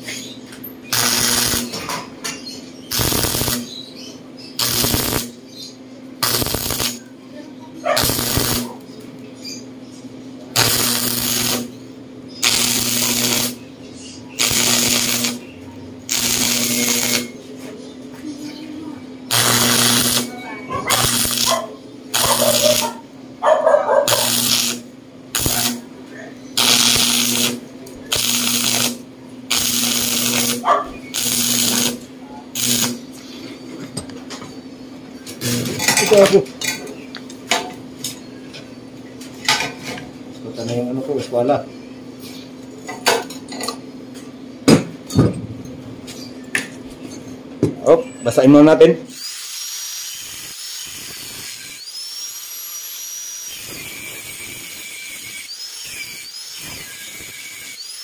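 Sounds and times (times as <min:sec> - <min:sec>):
steady low hum: 0:00.0 - 0:48.2
arc welding bursts: 0:00.9 - 0:01.9, 0:02.9 - 0:03.8, 0:04.6 - 0:05.4, 0:06.2 - 0:07.1, 0:08.0 - 0:08.8, 0:10.5 - 0:11.8, 0:12.4 - 0:13.6, 0:14.3 - 0:17.4, 0:19.2 - 0:23.1, 0:24.1 - 0:25.9, 0:26.6 - 0:33.1, 0:48.5 - 0:58.0.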